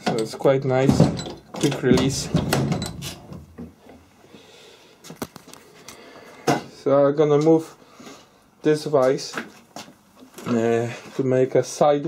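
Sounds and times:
clicks and knocks of vise: 0.0 - 4.0.

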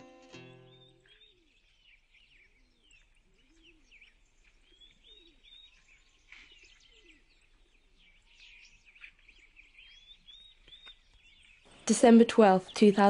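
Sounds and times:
small birds chirping: 0.0 - 13.0.

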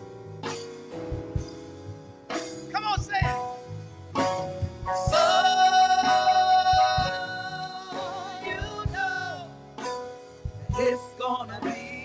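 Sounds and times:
drum beat: 1.1 - 1.6, 2.7 - 3.6, 4.2 - 9.4.

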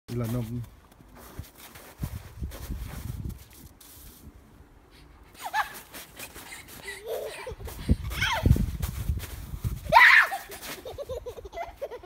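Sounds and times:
child squealing: 8.1 - 8.6, 9.9 - 10.6.

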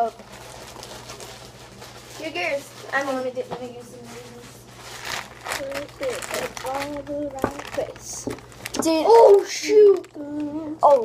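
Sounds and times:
plastic snack bag crinkling: 0.0 - 11.0
children's voices: 5.5 - 11.0.

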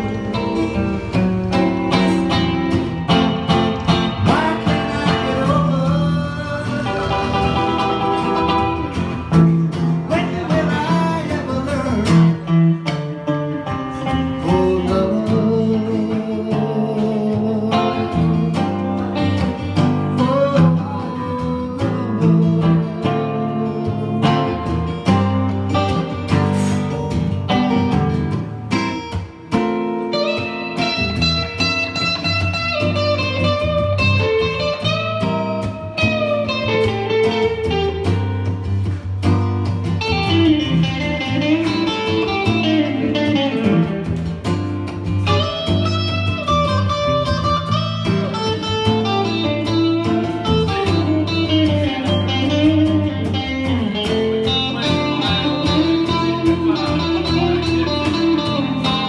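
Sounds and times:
electric guitar blues lead: 0.0 - 59.0
strummed acoustic guitar: 0.0 - 59.0.

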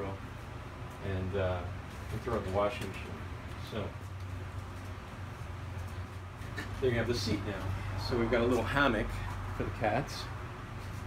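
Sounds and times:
faint background room noise: 0.0 - 11.0
steady low hum: 0.0 - 11.0.

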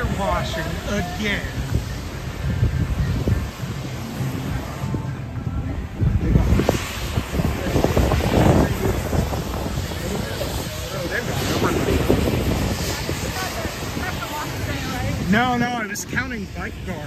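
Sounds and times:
pressure washer hiss and engine drone: 0.0 - 17.0
wind buffeting the microphone: 0.0 - 17.0.

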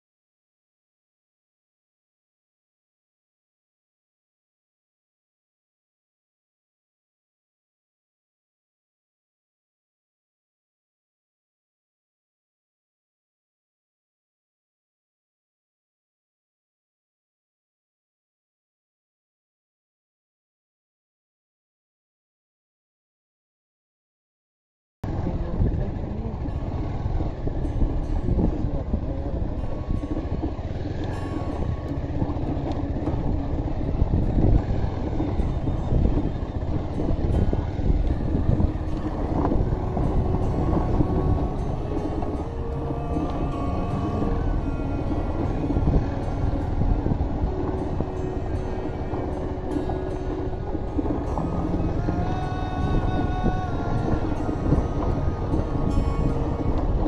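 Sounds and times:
wind rushing over microphone: 25.0 - 57.0
background music with held notes: 25.1 - 57.0.

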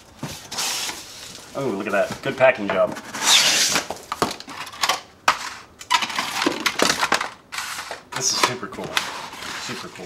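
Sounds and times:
cardboard scraping rustle: 0.0 - 4.0, 7.6 - 10.0
cardboard crackling scrapes: 7.6 - 10.0.

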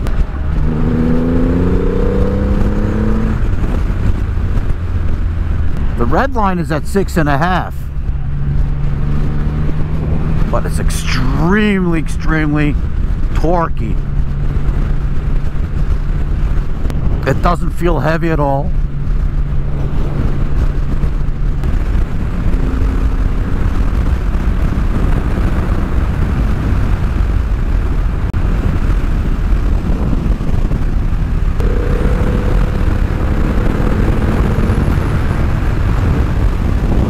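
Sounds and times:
wind and road noise: 0.0 - 37.0
motorcycle engine running: 12.7 - 37.0.

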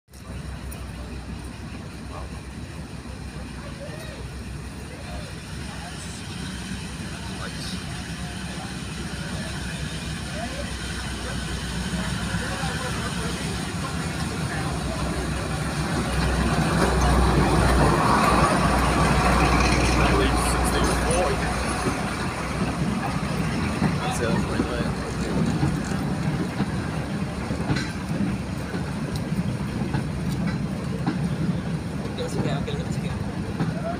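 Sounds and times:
diesel locomotive passing: 0.1 - 33.9.

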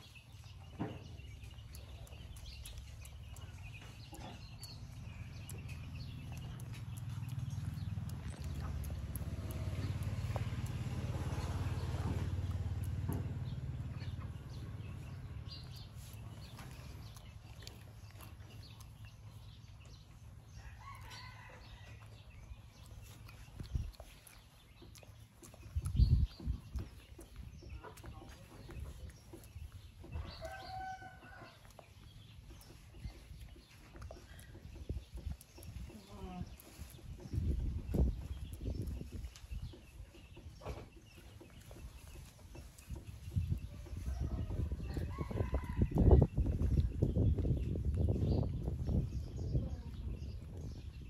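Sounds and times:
low rumble: 0.0 - 20.6, 31.6 - 51.0
rooster crowing: 44.2 - 46.2.

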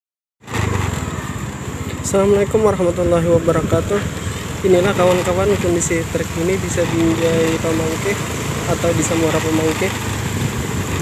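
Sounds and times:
motorbike engine running: 0.4 - 11.0.

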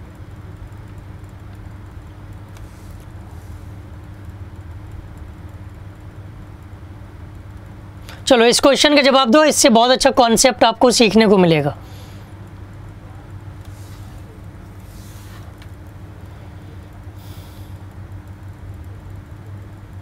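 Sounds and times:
low hum with faint hiss: 0.0 - 20.0.

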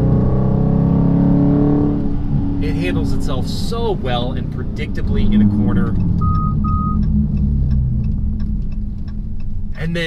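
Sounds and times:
car engine and road noise: 0.0 - 10.0
electronic chime beeps: 6.2 - 7.0.

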